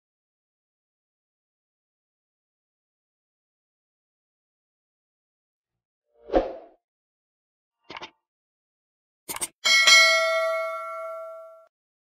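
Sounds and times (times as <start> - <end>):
bright bell ding: 9.6 - 11.7.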